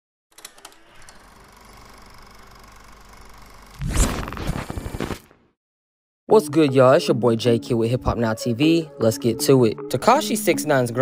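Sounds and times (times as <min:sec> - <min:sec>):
static-like electrical buzz: 0:01.7 - 0:05.5.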